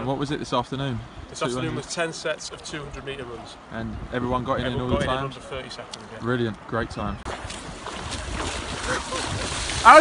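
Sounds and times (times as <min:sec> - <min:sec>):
wind on microphone: 0:03.8 - 0:05.3, 0:06.8 - 0:10.0
water splashing in surf: 0:07.2 - 0:10.0.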